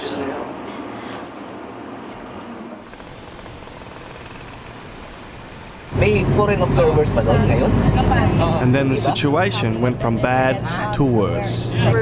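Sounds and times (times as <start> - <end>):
road traffic hiss: 2.8 - 8.4.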